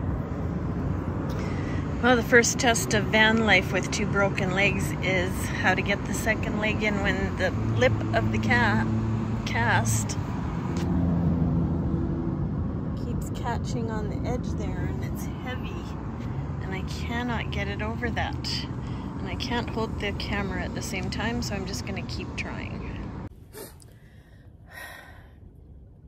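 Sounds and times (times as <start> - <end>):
vehicle engine running: 0.0 - 23.3
woman breathing out: 23.5 - 25.5.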